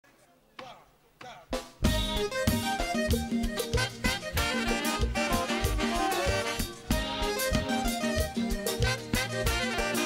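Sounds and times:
band with drums bass and horns: 1.2 - 10.0
vocal calls: 1.9 - 9.9.

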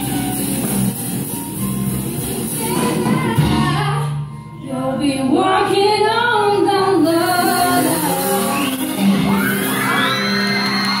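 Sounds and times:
audience whooping and cheering: 8.2 - 11.0.

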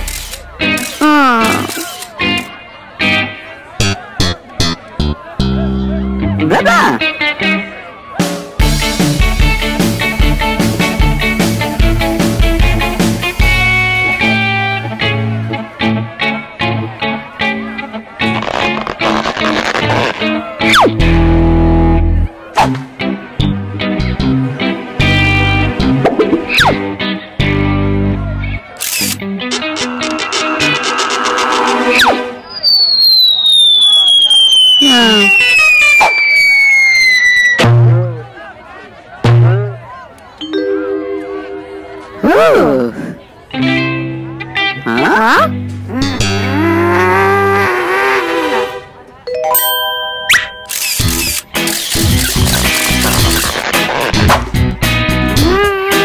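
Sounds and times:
plucked guitar music: 0.4 - 7.8, 8.5 - 30.8, 39.2 - 42.3, 43.4 - 46.6
mumbling cartoon voices: 1.0 - 1.9, 42.1 - 43.4, 44.8 - 48.6, 55.4 - 56.0
upbeat music with a beat: 8.2 - 14.2
slowly falling whistle effect: 32.0 - 37.6
chime-like tones with rising swoop: 49.3 - 51.0.

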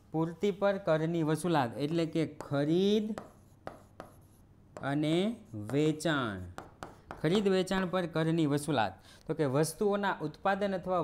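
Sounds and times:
pen writing on a board: 3.1 - 7.4.

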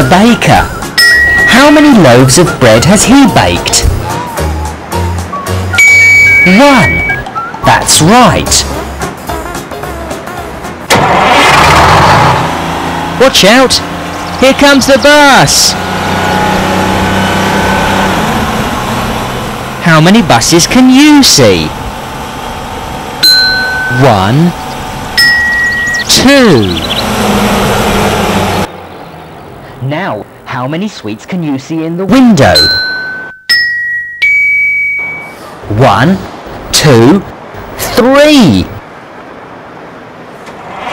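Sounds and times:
background music: 0.0 - 11.4
car engine humming: 0.0 - 30.5.

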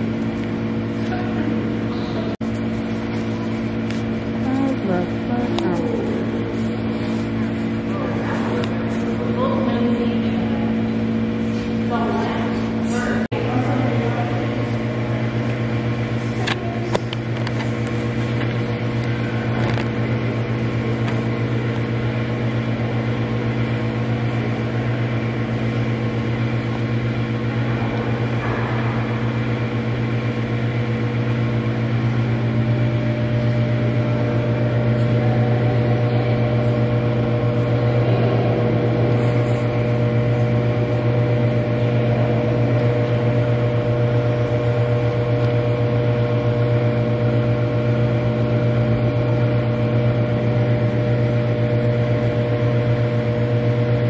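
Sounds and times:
low mechanical hum: 0.0 - 54.0.

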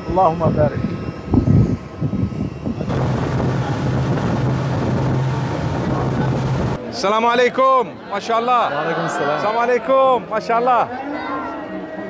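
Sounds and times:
turboprop engine noise: 0.0 - 6.8
wind rumbling on microphone: 0.0 - 6.8.

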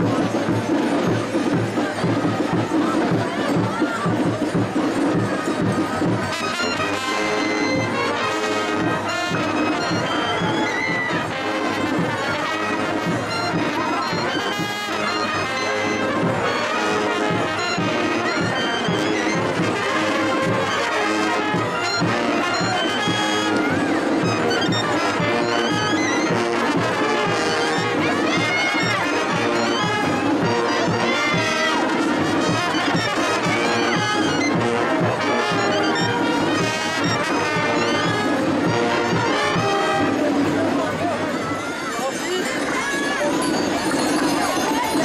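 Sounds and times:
brass band playing dance tune: 0.0 - 45.0.

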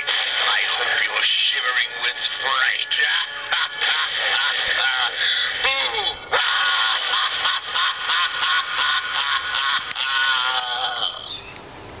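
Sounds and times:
tinny distorted voice from speaker: 0.0 - 7.5, 10.0 - 11.4.

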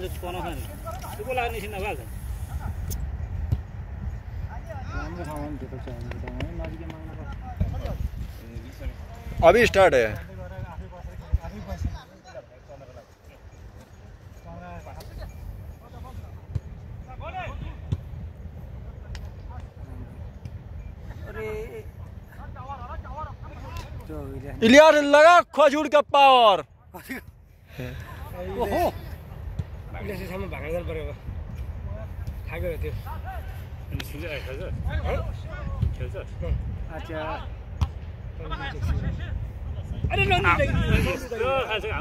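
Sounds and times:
men shouting calls: 24.6 - 26.6.

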